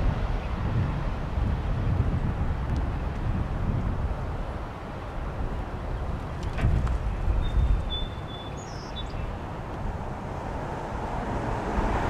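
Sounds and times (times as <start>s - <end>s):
wind rumble on microphone: 0.0s - 12.0s
bird chirp: 6.4s - 9.6s
bird whistling: 7.4s - 9.4s.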